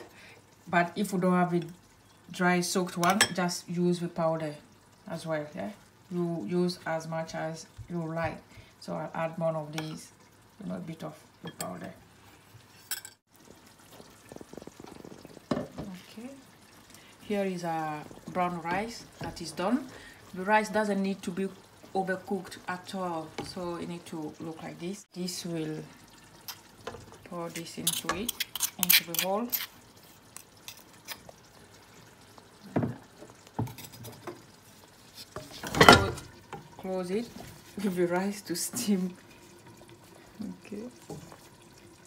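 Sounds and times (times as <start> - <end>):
pot bubbling on stove: 0.0 - 42.0
utensils scraping a pot: 27.5 - 31.2.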